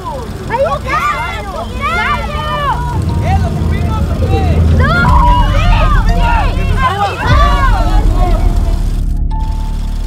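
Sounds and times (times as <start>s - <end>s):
voices calling out: 0.0s - 9.0s
steady low rumble: 0.0s - 10.0s
rising cry: 0.6s - 9.0s.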